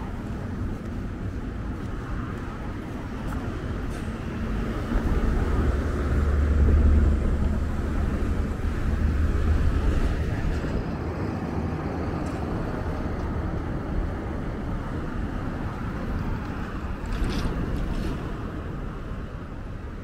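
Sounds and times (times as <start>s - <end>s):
street traffic: 0.0s - 20.0s
vehicle passing close by: 4.0s - 10.8s.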